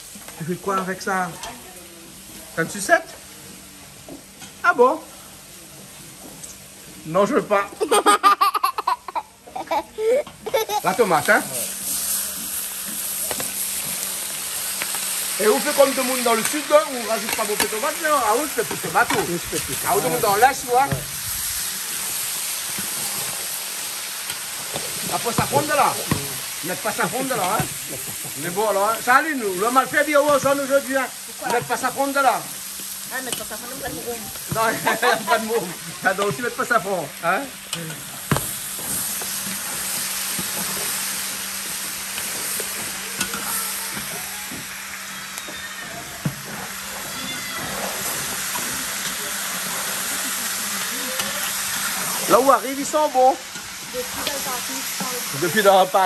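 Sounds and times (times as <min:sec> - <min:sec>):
meat and vegetables sizzling in pan: 0:00.0 - 0:08.0, 0:09.6 - 0:56.0.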